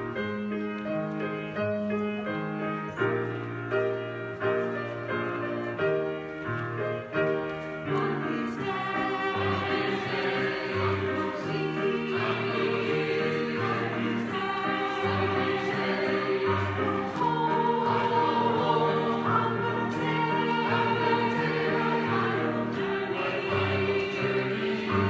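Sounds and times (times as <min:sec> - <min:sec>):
accompanying music: 0:00.0 - 0:25.0
church choir singing: 0:06.5 - 0:25.0.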